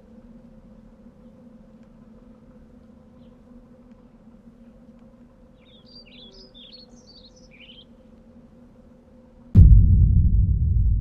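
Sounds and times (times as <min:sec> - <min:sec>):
faint low hum: 0:00.0 - 0:11.0
songbird chirping: 0:05.6 - 0:08.1.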